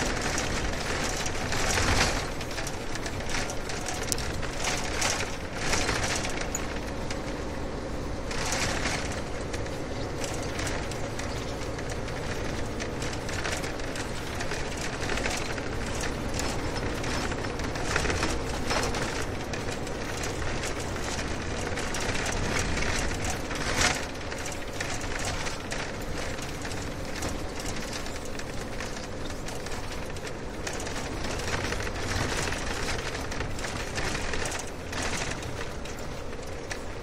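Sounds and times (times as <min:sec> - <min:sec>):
car road rumble: 0:00.0 - 0:37.0.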